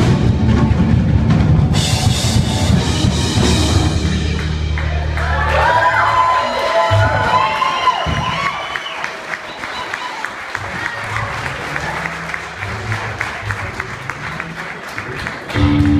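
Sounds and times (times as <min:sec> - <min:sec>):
electric guitars bending notes: 0:00.0 - 0:05.7, 0:15.5 - 0:15.9
audience applause: 0:04.2 - 0:15.9.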